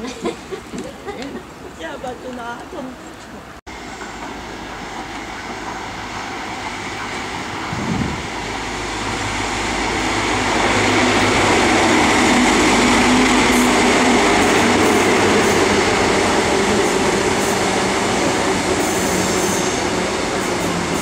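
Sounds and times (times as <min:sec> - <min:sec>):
diesel train passing: 0:01.8 - 0:21.0.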